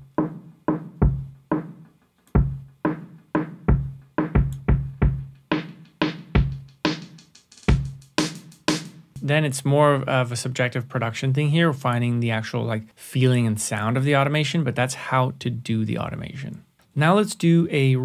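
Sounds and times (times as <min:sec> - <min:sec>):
programmed drum beat: 0:00.0 - 0:10.2.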